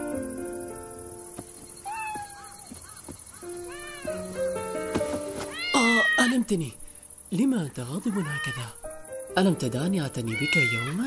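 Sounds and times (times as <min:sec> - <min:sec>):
soft background music: 0:00.0 - 0:11.0
kitten mewing: 0:08.1 - 0:08.8.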